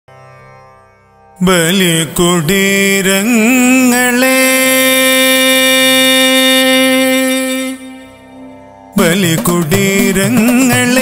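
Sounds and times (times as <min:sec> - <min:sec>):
man singing a long note: 0:01.4 - 0:08.2.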